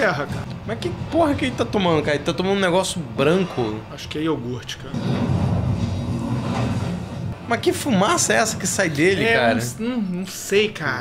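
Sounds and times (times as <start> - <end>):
deep film soundtrack rumble: 0.0 - 9.2.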